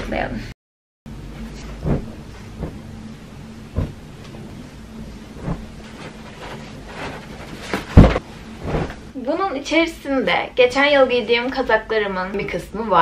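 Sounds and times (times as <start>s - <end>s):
low room hum: 1.1s - 13.0s
clothes thumping and rustling: 1.4s - 2.9s, 3.7s - 9.1s.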